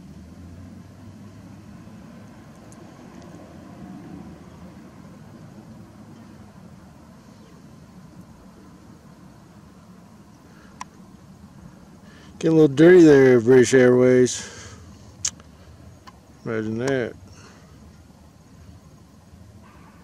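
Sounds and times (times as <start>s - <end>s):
low outdoor rumble: 0.0s - 20.0s.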